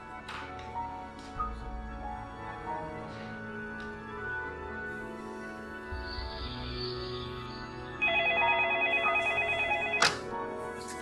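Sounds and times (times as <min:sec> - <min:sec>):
telephone ringing with electronic warble: 0:08.0 - 0:10.4.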